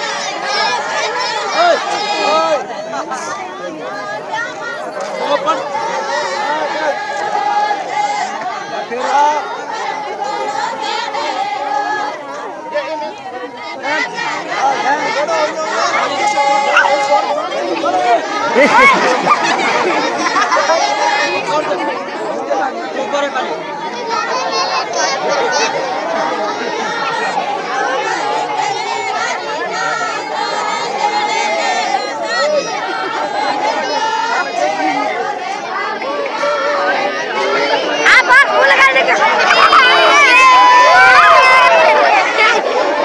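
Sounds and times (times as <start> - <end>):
crowd talking: 0.0 - 43.0.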